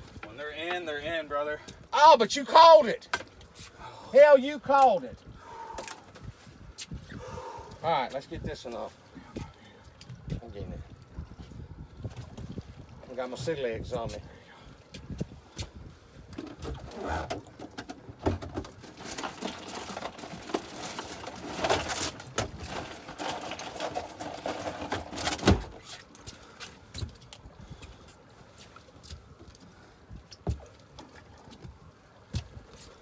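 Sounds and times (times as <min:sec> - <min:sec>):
rustling and clattering of objects: 0:15.2 - 0:29.4.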